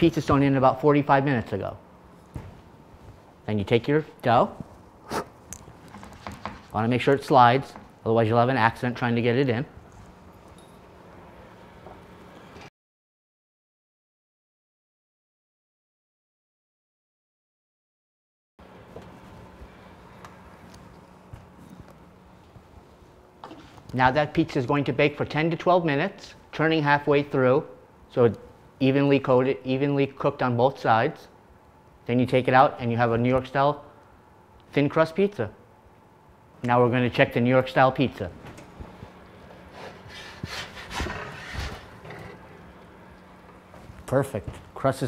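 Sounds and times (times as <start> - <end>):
steady low hum: 0.0 - 12.7, 18.6 - 45.0
wooden peel scraping pizza stone: 39.7 - 42.5.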